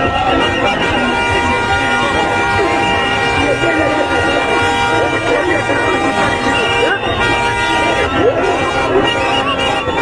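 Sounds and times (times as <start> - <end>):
crowd shouting and singing: 0.0 - 10.0
horns blasting: 0.0 - 10.0.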